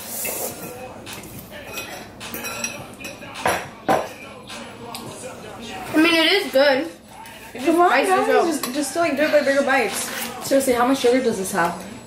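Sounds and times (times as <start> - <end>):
metal fork clinking against bowl: 1.6 - 3.4.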